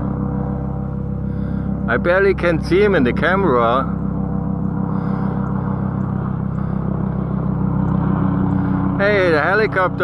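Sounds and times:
helicopter drone hum: 0.0s - 10.0s.

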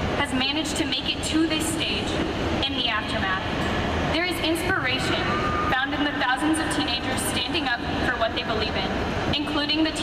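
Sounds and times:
woman speaking over a pa system: 0.2s - 10.0s.

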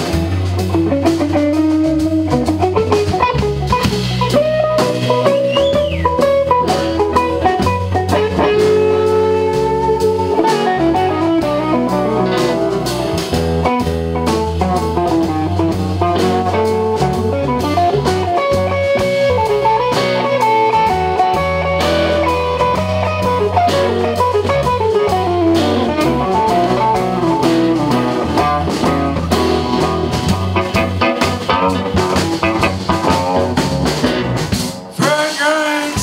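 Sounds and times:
bass guitar: 0.0s - 36.0s
drums: 0.0s - 36.0s
electric guitar lead lines: 0.0s - 36.0s.

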